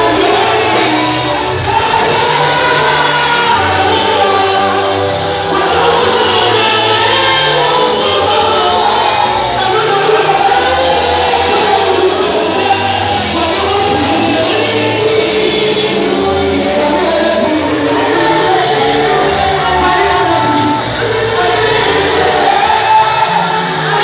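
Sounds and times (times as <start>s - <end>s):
bass line: 0.0s - 24.0s
group singing: 0.0s - 24.0s
live gospel music: 0.0s - 24.0s.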